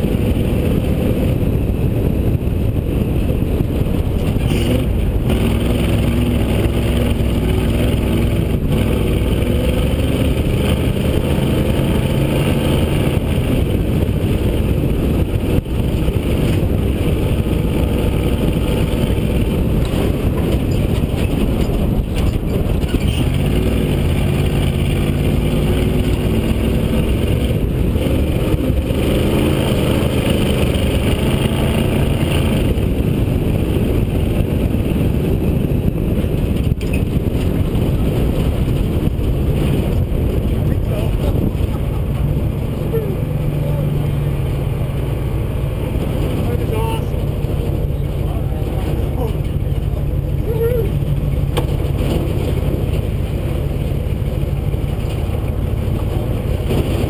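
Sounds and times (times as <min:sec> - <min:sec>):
rally car engine revving: 0:00.0 - 0:57.0
road and wind noise: 0:00.0 - 0:57.0.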